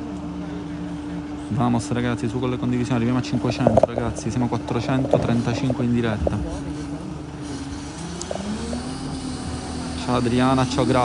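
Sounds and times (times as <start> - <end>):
motor running with low drone: 0.0 - 11.0.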